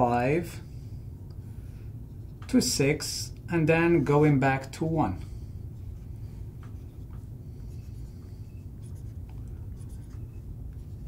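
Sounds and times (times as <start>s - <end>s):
steady low hum: 0.0s - 11.0s
marker pen writing on glass: 7.7s - 11.0s.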